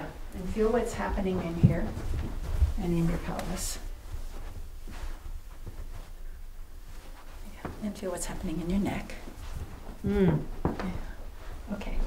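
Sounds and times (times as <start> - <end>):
steady low rumble: 0.0 - 10.1
soft footsteps on carpet: 0.1 - 12.0.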